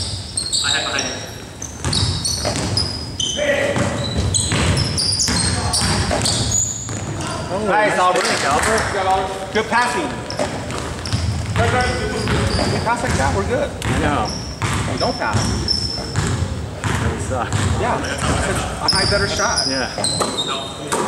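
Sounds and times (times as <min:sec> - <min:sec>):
sneakers squeaking: 0:00.0 - 0:21.0
basketball bouncing: 0:01.7 - 0:03.0, 0:03.6 - 0:07.2, 0:10.2 - 0:19.4.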